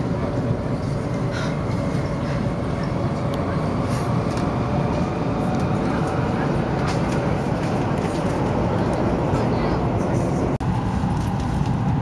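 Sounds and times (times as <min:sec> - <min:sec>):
train cabin rumble: 0:00.0 - 0:12.0.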